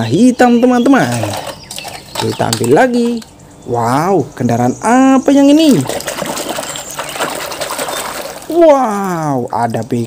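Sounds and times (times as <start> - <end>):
water sloshing in a plastic basin: 0.4 - 3.4, 5.5 - 10.0.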